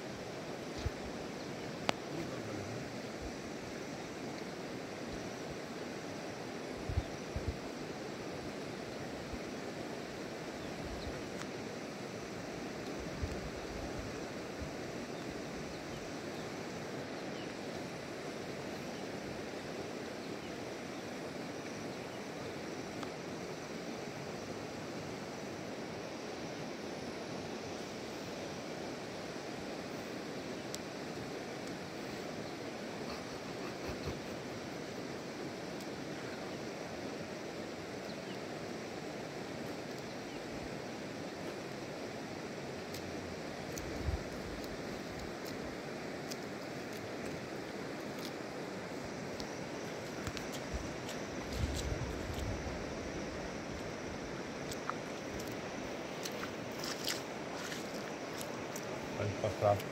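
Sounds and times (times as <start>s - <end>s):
rushing outdoor noise: 0.0s - 59.9s
bare feet stepping in mud: 54.6s - 58.9s.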